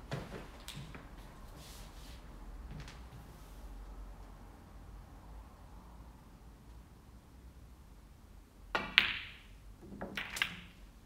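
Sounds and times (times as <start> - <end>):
cue tip striking ball: 8.8 - 10.7
ball dropping into pocket: 8.8 - 10.8
snooker balls clicking: 8.8 - 10.9.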